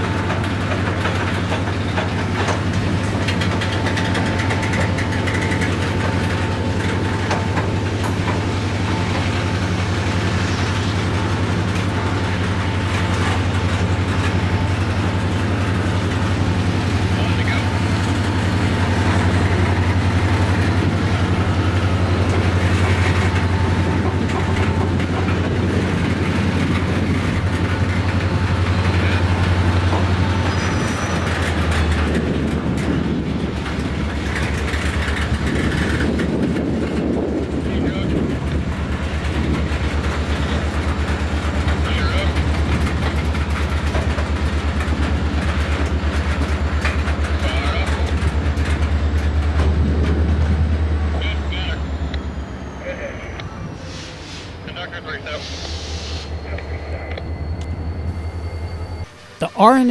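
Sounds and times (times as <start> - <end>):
train wheels rumbling on rails: 0.0 - 59.8.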